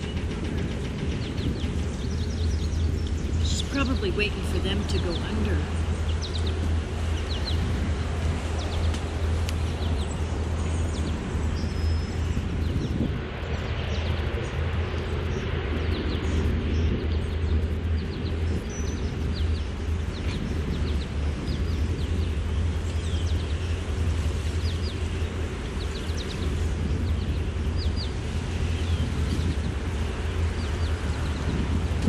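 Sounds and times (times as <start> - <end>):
birds chirping: 0.0 - 32.0
boat engine droning: 0.0 - 32.0.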